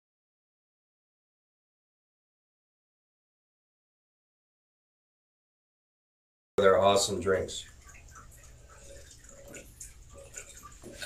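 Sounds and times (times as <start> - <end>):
man gulping water: 7.7 - 11.0.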